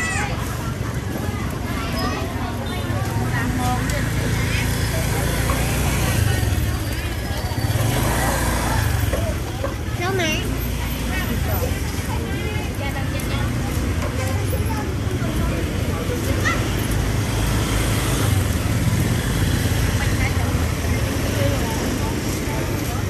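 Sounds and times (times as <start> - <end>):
low traffic rumble: 0.0 - 23.0
motor scooters running: 0.0 - 23.0
people talking: 0.0 - 23.0.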